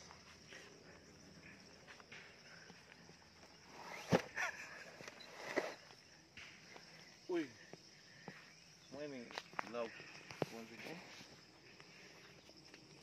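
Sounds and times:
high insect drone: 0.0 - 13.0.

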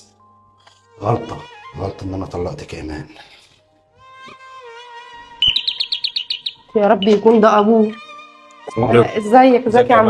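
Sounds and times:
background music held note: 0.0 - 10.0
electronic doorbell chirping: 5.4 - 7.6.

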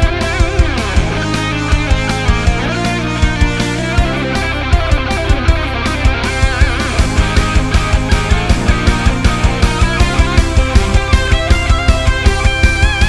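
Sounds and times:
distorted electric guitar solo: 0.0 - 13.0
metal band with drums and bass: 0.0 - 13.0.

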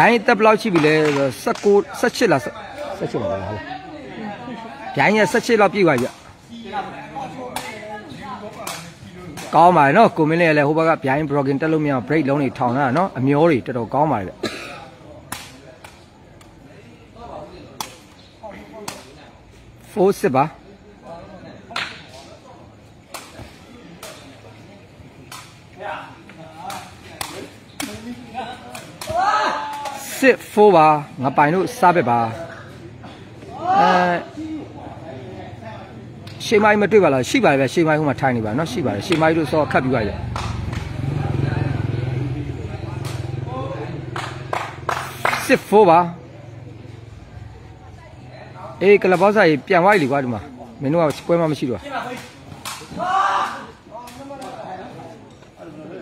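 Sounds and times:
engine humming: 39.1 - 45.4.

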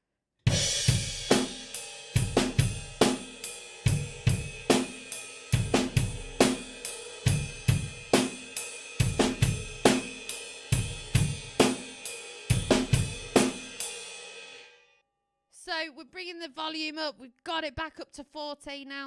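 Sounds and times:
drum kit playing rock groove: 0.5 - 14.5.

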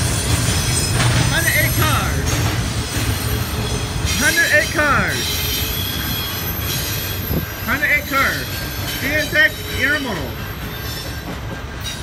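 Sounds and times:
train wheels rumbling on rail: 0.0 - 12.0
high wheel squeals: 2.9 - 12.0.

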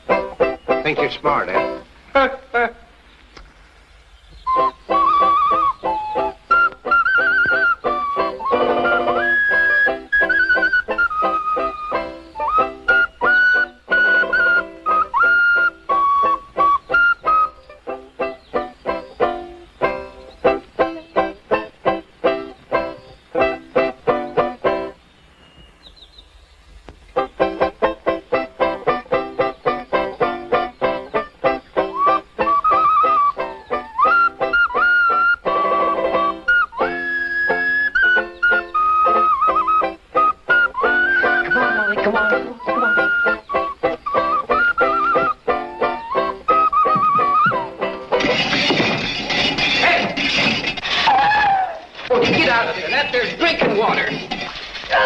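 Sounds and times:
banjo picking a lively tune: 0.0 - 2.4, 6.5 - 24.9, 27.2 - 51.1, 52.0 - 55.0
high whistled melody: 4.3 - 21.7, 28.4 - 50.6.

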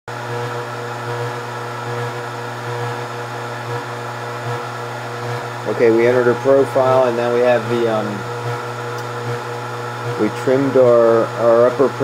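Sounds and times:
fans whirring hum: 0.2 - 12.0.

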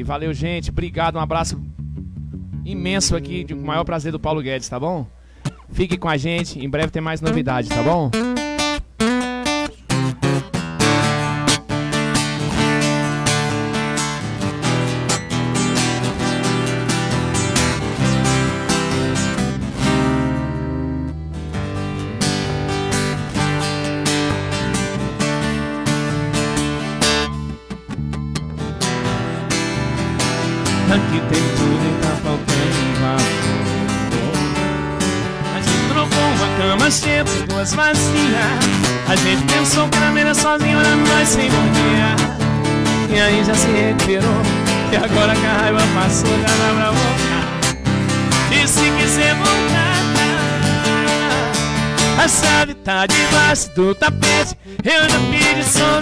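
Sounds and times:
live band playing instrumental: 10.5 - 30.9.

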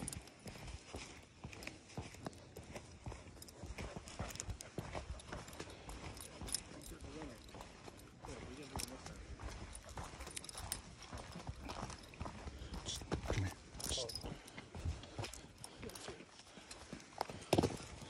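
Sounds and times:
running footsteps on dirt trail: 0.0 - 18.0.

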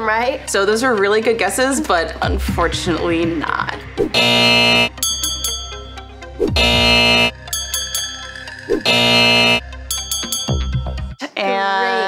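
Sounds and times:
upbeat background music: 0.0 - 12.0
wrong-answer buzzer: 4.2 - 5.0, 6.5 - 7.4, 8.8 - 9.6.

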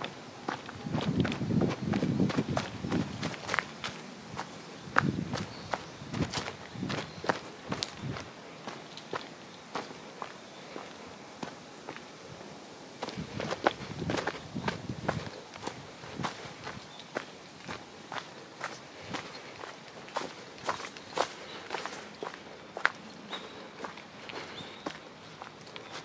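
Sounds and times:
footsteps crunching on leaves: 0.0 - 12.1, 13.0 - 26.0.

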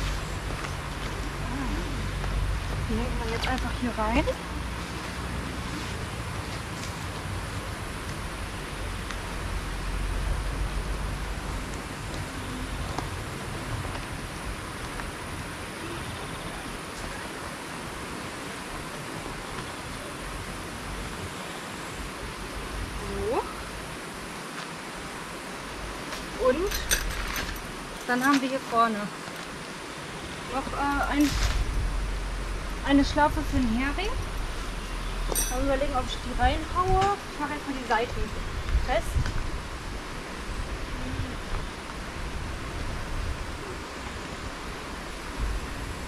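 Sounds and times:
outdoor background hiss: 0.0 - 46.0
low rumble: 30.7 - 37.0.

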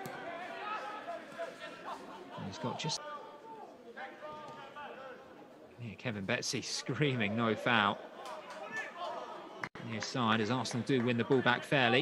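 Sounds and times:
open-air stadium ambience: 0.0 - 12.0.

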